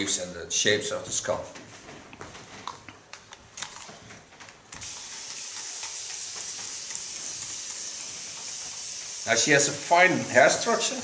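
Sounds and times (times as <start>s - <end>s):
spray bottle hissing: 4.8s - 11.0s.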